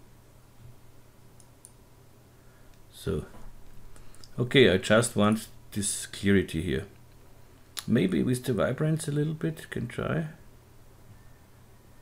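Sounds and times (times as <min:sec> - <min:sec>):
low steady hum: 0:00.0 - 0:12.0
computer mouse clicks: 0:01.4 - 0:01.8.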